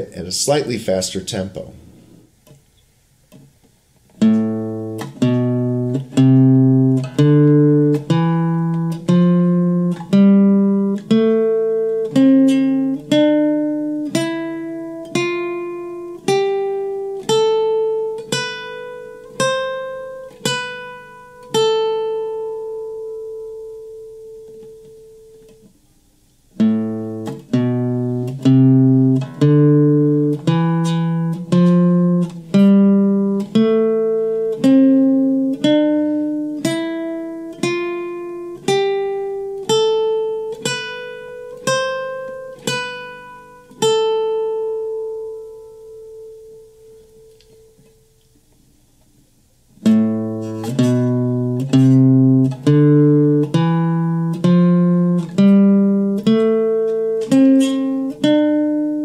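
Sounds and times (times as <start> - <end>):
classical guitar playing a scale: 4.1 - 25.8, 26.5 - 48.2, 49.7 - 59.0.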